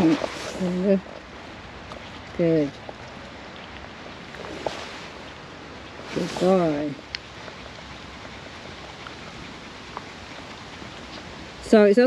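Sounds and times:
steady even hiss: 0.0 - 12.0.

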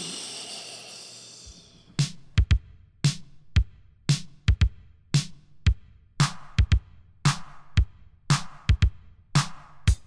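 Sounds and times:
long breathy hiss: 0.0 - 2.0.

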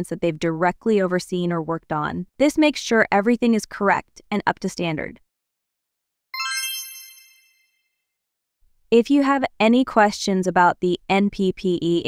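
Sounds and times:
bright bell-like chime: 6.4 - 8.0.

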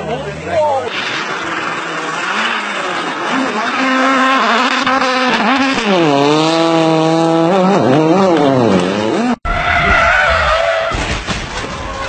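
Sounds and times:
rally car engine revving: 0.0 - 10.9
tyres skidding and squealing: 0.0 - 12.0.

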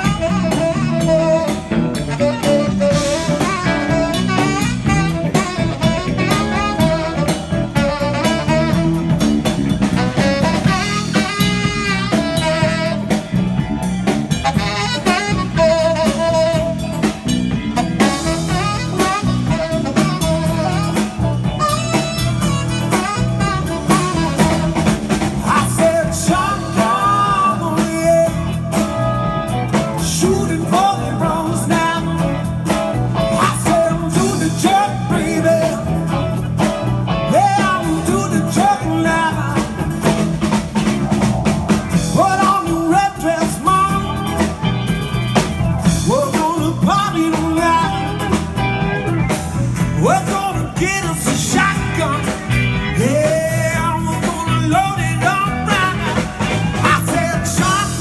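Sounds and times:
blues-rock band playing: 0.0 - 58.0
electric guitar lead: 0.0 - 58.0
keyboard: 0.0 - 58.0.

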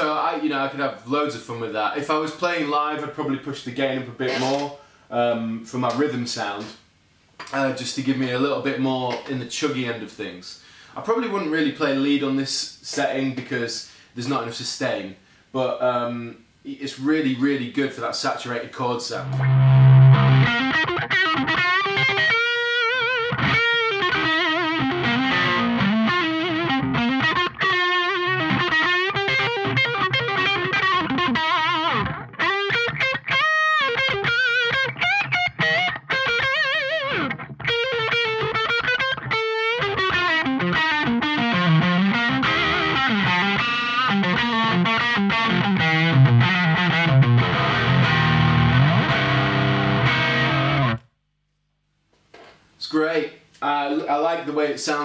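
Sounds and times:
overdriven electric guitar: 19.2 - 51.1.

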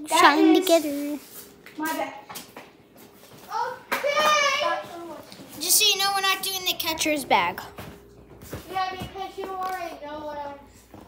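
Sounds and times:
boy speaking: 0.0 - 1.2, 3.5 - 7.8, 8.6 - 10.7.

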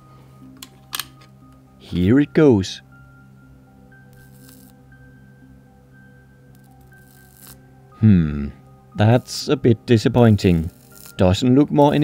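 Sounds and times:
soft background music: 0.0 - 12.0
electric spark crackling hiss: 4.1 - 4.8, 6.5 - 7.6, 10.3 - 12.0.

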